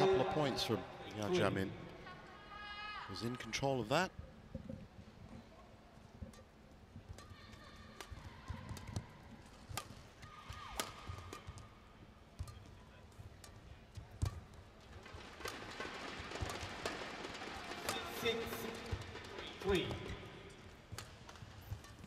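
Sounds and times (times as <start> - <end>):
crowd noise: 0.0 - 3.3
racket striking shuttlecock: 8.0 - 11.7, 12.3 - 22.0.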